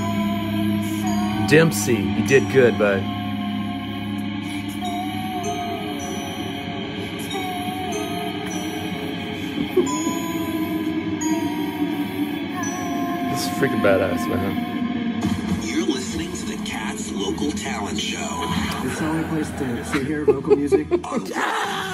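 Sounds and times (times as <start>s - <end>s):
high chime-like bell notes: 0.0s - 14.8s
soft music from a radio: 0.0s - 21.9s.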